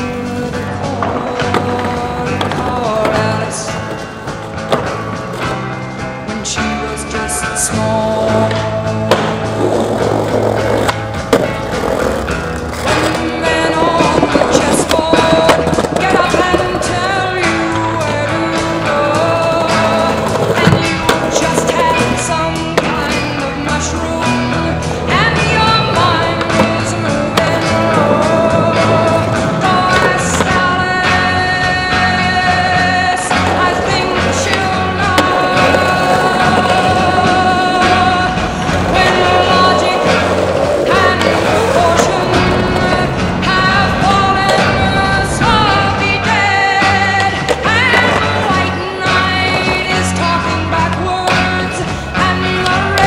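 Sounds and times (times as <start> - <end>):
music: 0.0 - 53.0
skateboard clacks: 0.0 - 53.0
skateboard wheels rolling on pavement: 0.0 - 53.0.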